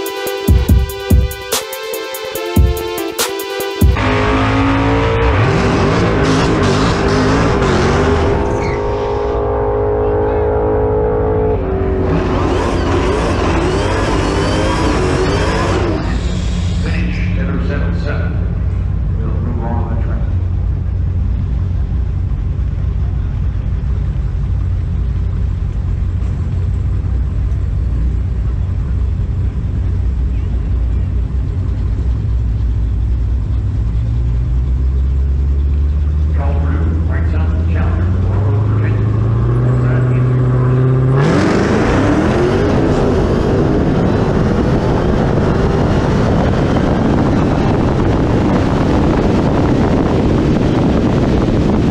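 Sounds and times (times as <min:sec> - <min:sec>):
engine idling drone: 0:00.0 - 0:51.9
engine revving: 0:03.8 - 0:51.9
tires squealing in burnout: 0:04.0 - 0:17.8.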